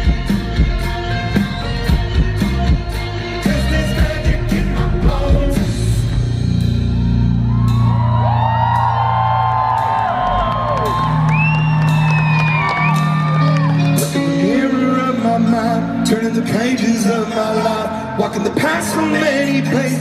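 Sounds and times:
held low bass chords: 0.0 - 18.4
live rock band playing: 0.0 - 20.0
crowd whooping and yelling: 6.9 - 14.2.

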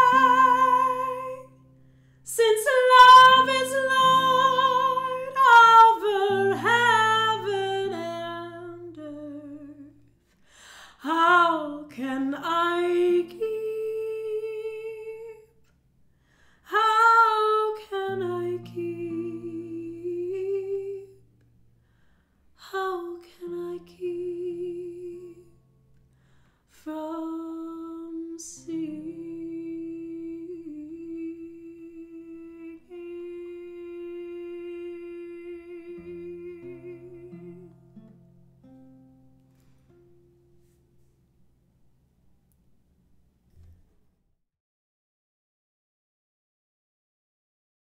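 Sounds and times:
woman singing wordless note: 0.0 - 1.6, 2.3 - 10.0, 26.9 - 37.8
classical guitar chord: 0.0 - 10.0, 18.0 - 22.0, 33.6 - 41.2
woman singing held notes: 2.3 - 9.9.

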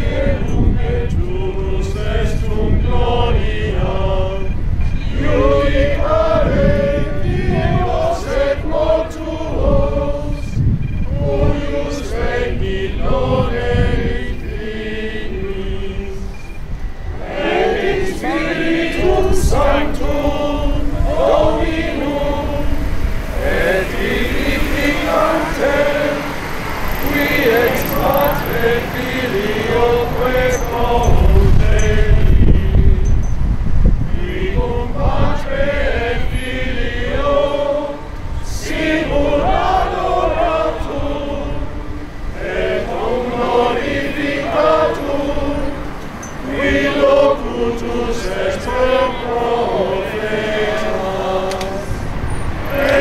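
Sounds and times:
choir chanting slowly: 0.0 - 16.4, 17.0 - 33.1, 33.9 - 53.0.

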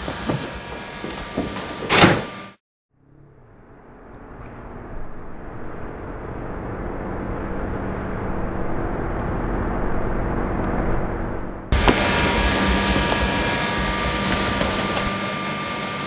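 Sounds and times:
low rumbling drone: 2.9 - 16.0
sharp hit: 11.7 - 15.7.

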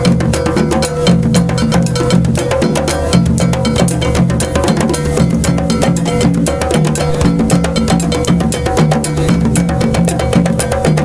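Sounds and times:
hand drums playing fast rhythm: 0.0 - 11.0
low bass drum notes: 0.0 - 11.0.

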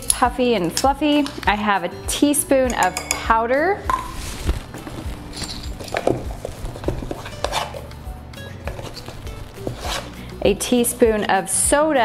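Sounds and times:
soft background music: 0.0 - 12.0
metal spoons clinking: 2.6 - 3.4, 5.3 - 6.1.

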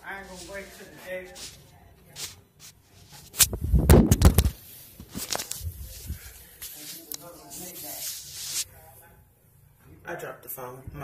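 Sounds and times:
microphone handling rumble: 3.4 - 4.6.

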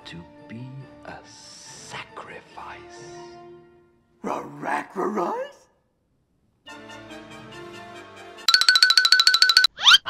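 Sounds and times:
fast warbling tone: 8.5 - 10.0.

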